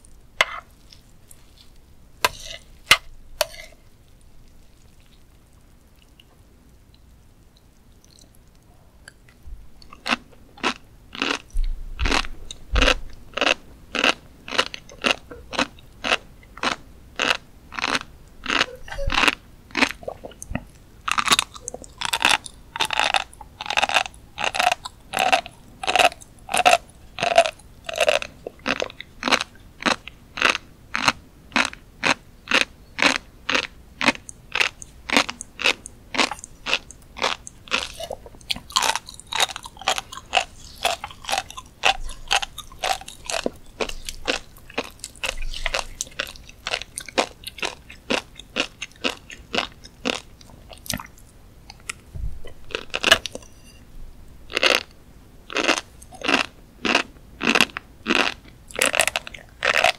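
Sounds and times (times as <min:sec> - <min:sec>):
fish roe crunching while chewing: 0:00.1 - 0:07.1, 0:09.8 - 0:53.8, 0:54.5 - 0:54.9, 0:55.5 - 0:59.9.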